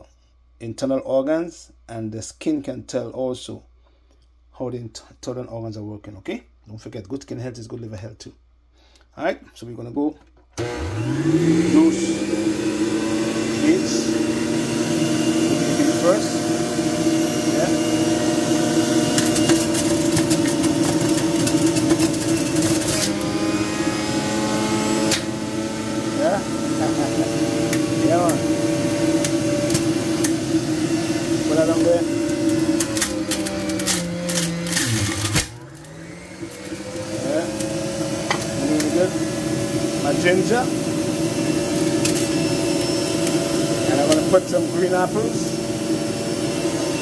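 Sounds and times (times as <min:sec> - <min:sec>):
juicer motor running: 0:10.6 - 0:47.0.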